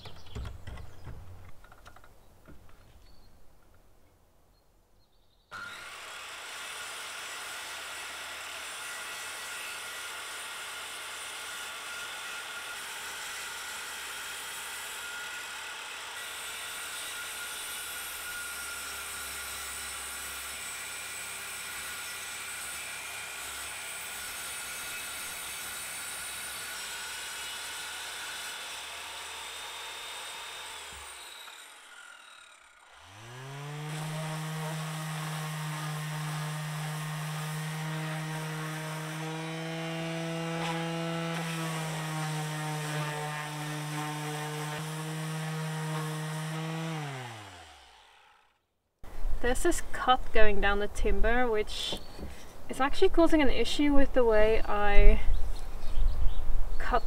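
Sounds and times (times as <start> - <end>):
circular saw cutting wood: 5.5 - 48.6.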